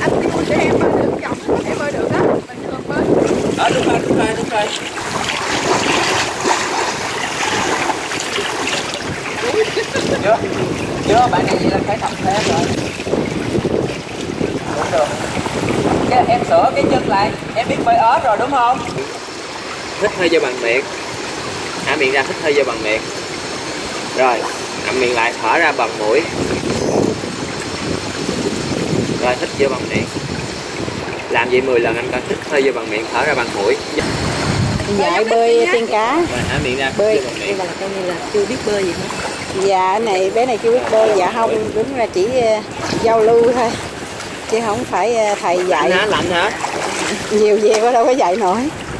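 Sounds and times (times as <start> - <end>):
pool water splashing: 0.0 - 48.9.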